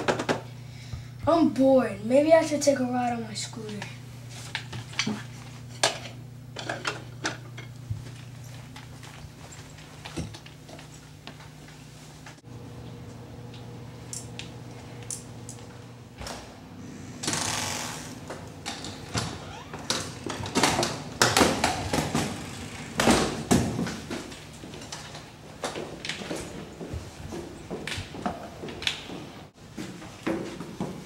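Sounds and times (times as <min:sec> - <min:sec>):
kick scooter clattering: 0:18.6 - 0:29.2.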